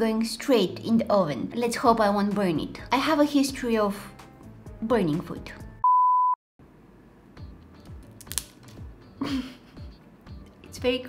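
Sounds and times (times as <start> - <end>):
high test-tone beep: 5.8 - 6.4.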